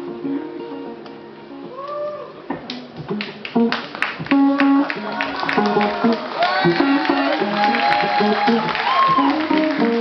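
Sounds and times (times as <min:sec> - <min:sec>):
electric jazz guitar: 0:00.0 - 0:10.0.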